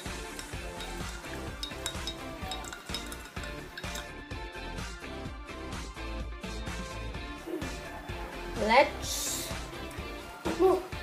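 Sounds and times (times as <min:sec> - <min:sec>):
spoon stirring coffee in mug: 0:00.0 - 0:04.2
background music: 0:00.0 - 0:11.0.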